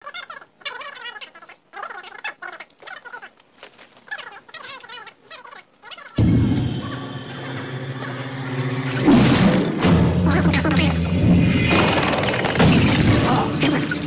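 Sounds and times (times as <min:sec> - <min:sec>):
quiet broken sounds: 0:00.0 - 0:14.0
low sustained horror music chord: 0:06.2 - 0:11.9.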